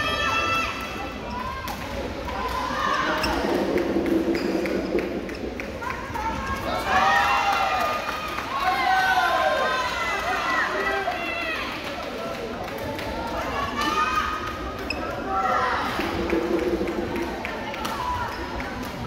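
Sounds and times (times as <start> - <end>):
voices echoing in hall: 0.0 - 19.0.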